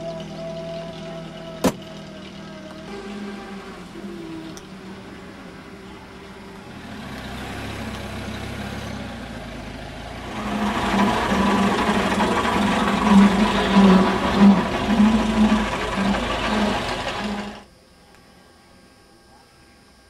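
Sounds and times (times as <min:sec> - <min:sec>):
van engine running: 0:00.0 - 0:17.6.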